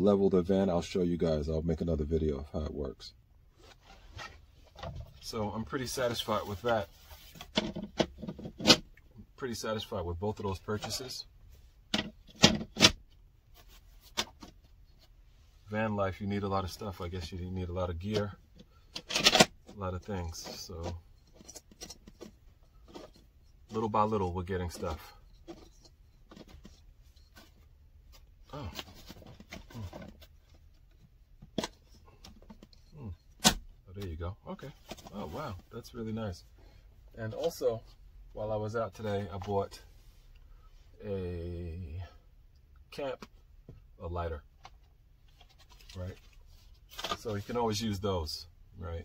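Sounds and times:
faint rubbing and handling noises: 0:00.0 - 0:49.0.

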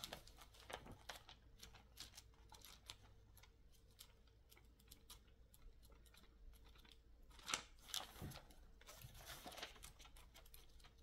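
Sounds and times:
book pages rustling: 0:00.0 - 0:11.0.

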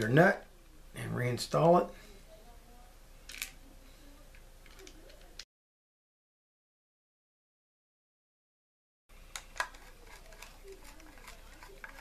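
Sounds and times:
nut scraping on shaft: 0:09.6 - 0:12.0.

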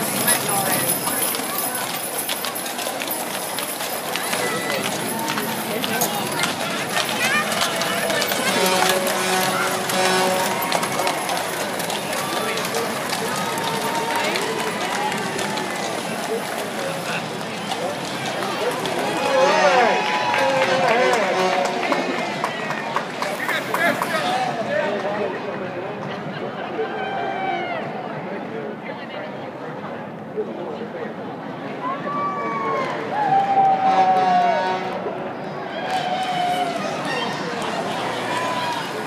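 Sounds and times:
outdoor bustle: 0:00.0 - 0:39.0
people talking in a crowd: 0:00.0 - 0:39.0
steady street noise: 0:00.0 - 0:39.0.

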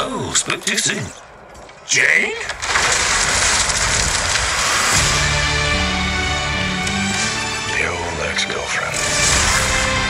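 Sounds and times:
large fire crackling: 0:01.4 - 0:10.0.

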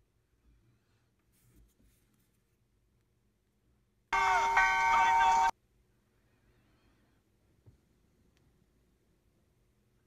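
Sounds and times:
bell-like ringing tones: 0:04.2 - 0:05.5.

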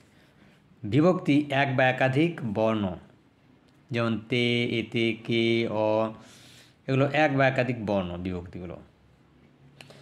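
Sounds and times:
man chanting syllables: 0:03.9 - 0:06.2.

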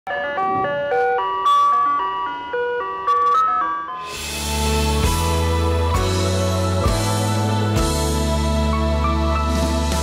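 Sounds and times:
ice cream truck jingle: 0:00.1 - 0:06.8.

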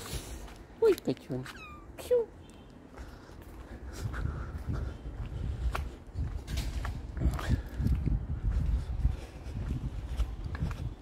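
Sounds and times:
cat meowing: 0:01.5 - 0:02.0.

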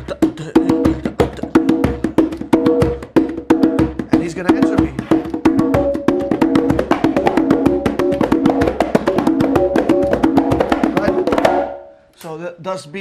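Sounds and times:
conga drums played by hand: 0:00.0 - 0:11.9.

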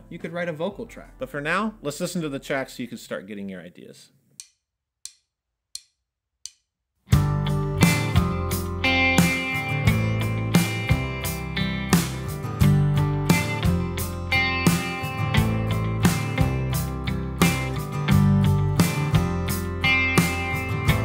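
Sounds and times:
band playing instrumental groove: 0:07.1 - 0:21.0.

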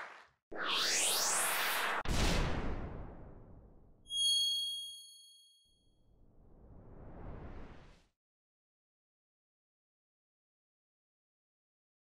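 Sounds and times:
bell-like chime: 0:04.1 - 0:05.6.

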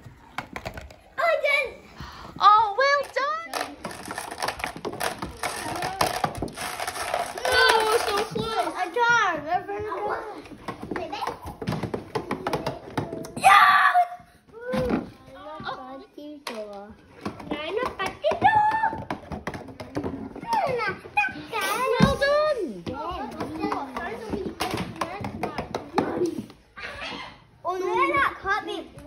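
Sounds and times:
young children talking: 0:07.2 - 0:11.6, 0:20.1 - 0:29.0.

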